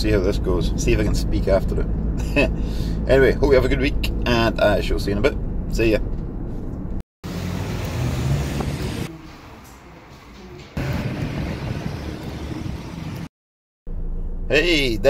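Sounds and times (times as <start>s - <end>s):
road and engine noise in a van: 0.0s - 13.3s, 13.9s - 15.0s.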